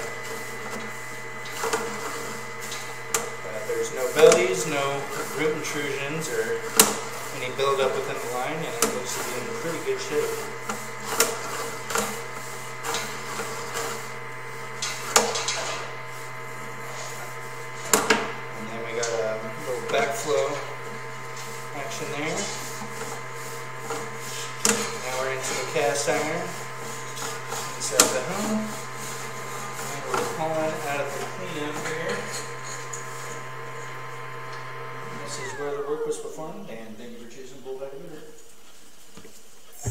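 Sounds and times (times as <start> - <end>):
steady electrical hum: 0.0 - 31.9, 35.1 - 39.9.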